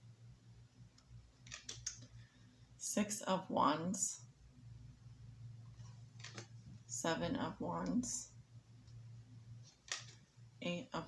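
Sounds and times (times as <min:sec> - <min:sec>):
faint low hum: 0:00.0 - 0:11.0
cards clicking and sliding: 0:09.7 - 0:10.2.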